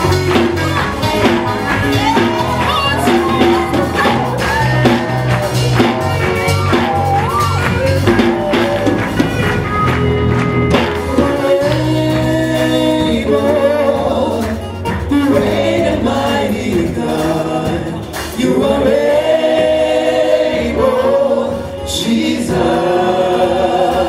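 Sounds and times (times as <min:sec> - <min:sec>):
men singing backing harmony: 0:00.0 - 0:06.1, 0:07.5 - 0:09.4, 0:11.0 - 0:24.0
woman singing lead: 0:00.0 - 0:09.4
band accompaniment with bass: 0:00.0 - 0:24.0.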